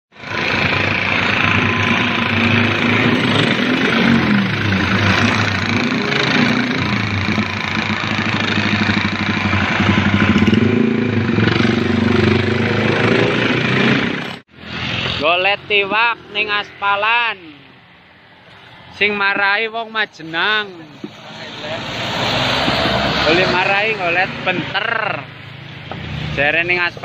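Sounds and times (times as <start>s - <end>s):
motorcycles passing by: 0.2s - 19.3s, 20.4s - 27.0s.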